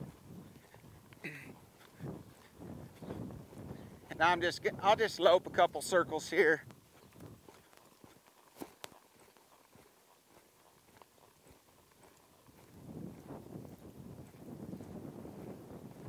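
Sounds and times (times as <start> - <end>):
horse hoofbeats on dirt: 0.0 - 16.0.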